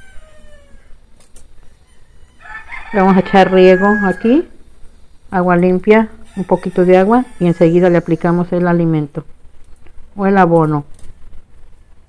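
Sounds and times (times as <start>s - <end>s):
faint falling animal call: 0.0s - 1.0s.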